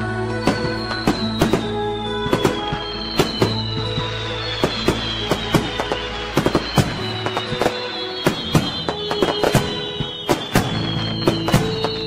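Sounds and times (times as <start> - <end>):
fireworks bangs: 0.0 - 12.0
music with sustained tones: 0.0 - 12.0.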